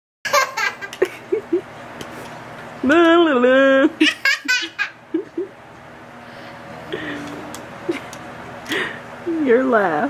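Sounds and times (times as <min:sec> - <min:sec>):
toddler laughing: 0:00.3 - 0:01.6, 0:04.0 - 0:05.5.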